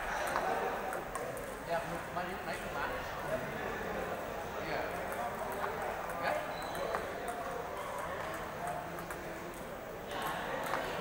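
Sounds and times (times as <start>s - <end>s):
table tennis balls clicking: 0.0s - 1.6s, 5.0s - 9.7s, 10.6s - 11.0s.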